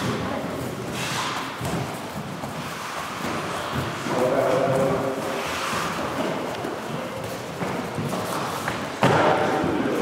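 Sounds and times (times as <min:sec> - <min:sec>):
noisy echoing hall background: 0:00.0 - 0:10.0.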